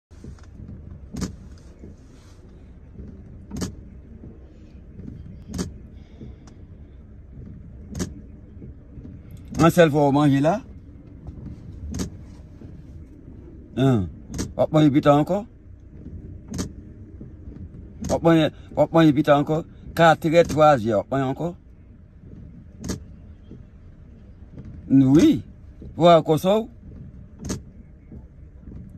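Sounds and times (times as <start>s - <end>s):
low rumble inside car cabin: 0.0s - 28.9s.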